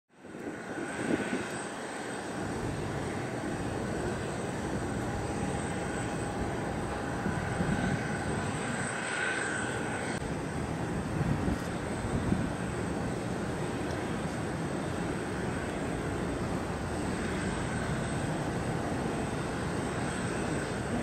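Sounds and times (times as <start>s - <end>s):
distant jet engine roar: 0.1s - 21.0s.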